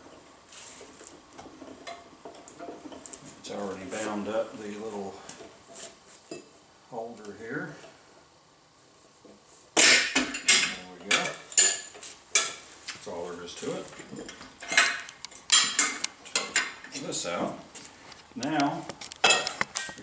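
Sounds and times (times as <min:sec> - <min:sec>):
metal tools clanking on wheel rim: 0:09.8 - 0:17.1, 0:18.6 - 0:20.0.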